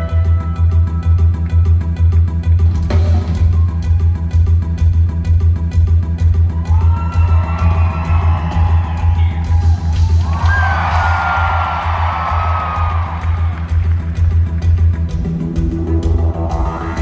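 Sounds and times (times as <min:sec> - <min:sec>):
heavy pulsing bass: 0:00.0 - 0:17.0
live concert music: 0:00.0 - 0:17.0
steady drum beat: 0:02.7 - 0:17.0.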